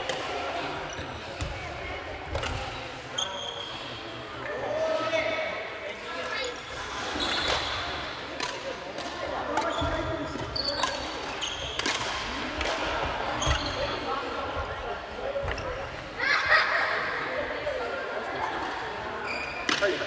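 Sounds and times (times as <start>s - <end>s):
players' voices: 0.0s - 20.0s
sneakers squeaking on wooden floor: 9.6s - 11.8s, 13.3s - 14.0s, 19.2s - 19.7s
rackets hitting shuttlecocks: 10.4s - 13.0s.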